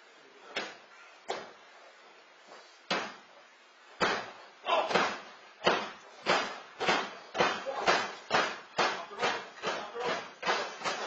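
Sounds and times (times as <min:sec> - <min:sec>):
sharp rhythmic smacks: 0:02.8 - 0:03.3, 0:03.9 - 0:11.0.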